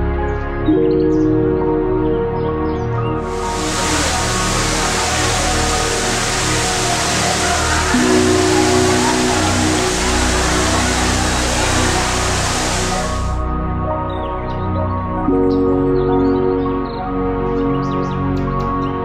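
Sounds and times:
slow soft piano music: 0.0 - 19.0
steady rushing hiss: 3.2 - 13.5.

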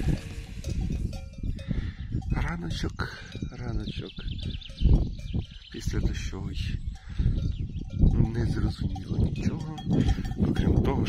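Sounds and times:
cows chewing grass: 0.0 - 1.7
cowbell clanking: 0.0 - 11.0.

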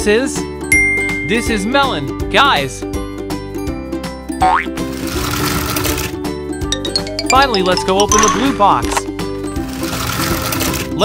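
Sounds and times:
background music: 0.0 - 10.9.

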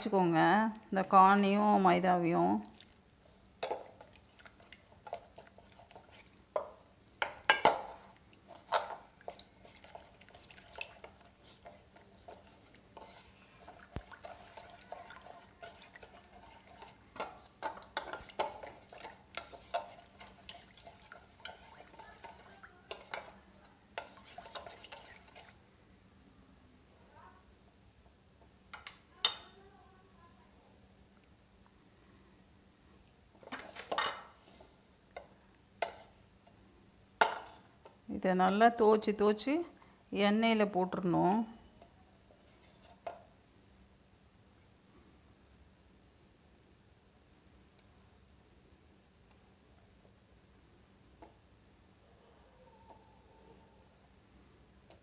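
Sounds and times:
spoon stirring batter in bowl: 2.6 - 25.6, 33.4 - 36.6, 37.2 - 39.1, 41.8 - 43.4.

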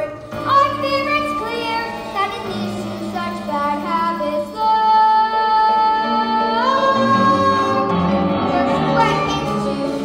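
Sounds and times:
girl singing a show tune: 0.0 - 9.8
instrumental accompaniment: 0.0 - 10.0.

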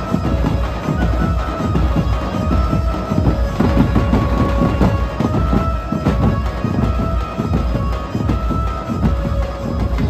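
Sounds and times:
large drums beaten fast: 0.0 - 10.0.

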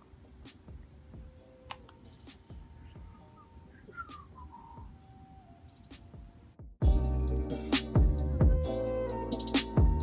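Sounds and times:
low room noise: 0.0 - 6.6
high-pitched chirps and whistles: 2.8 - 5.5.

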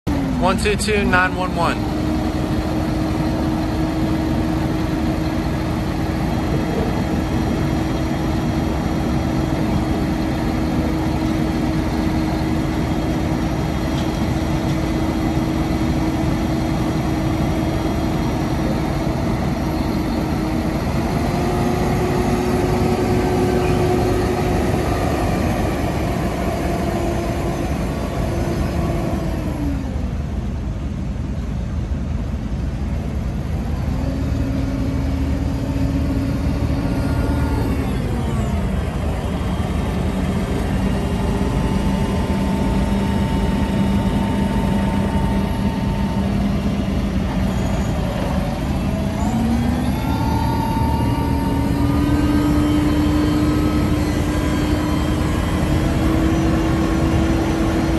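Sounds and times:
tractor diesel engine running: 0.1 - 57.9.

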